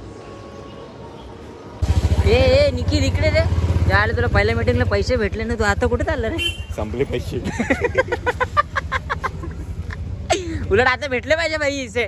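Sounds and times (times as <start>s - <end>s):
man laughing hard: 7.4s - 10.7s.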